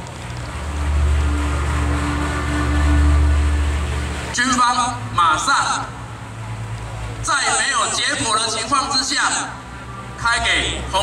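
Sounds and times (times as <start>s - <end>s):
low rumble: 0.0s - 4.4s.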